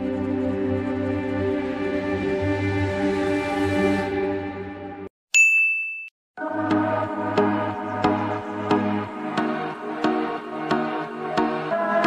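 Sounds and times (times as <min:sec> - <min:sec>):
high ding: 0:05.3 - 0:06.2
electronic music with beat: 0:06.4 - 0:12.0.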